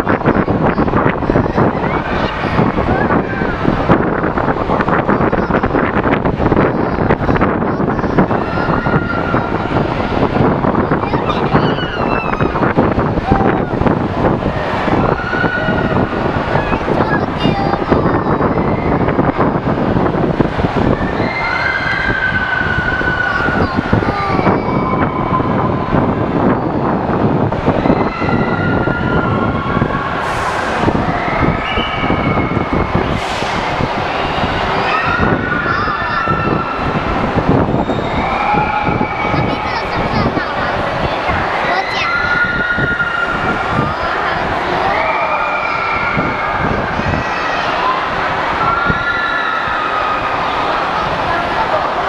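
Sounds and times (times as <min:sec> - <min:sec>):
ride and arcade machine noise: 0:00.0 - 0:52.0.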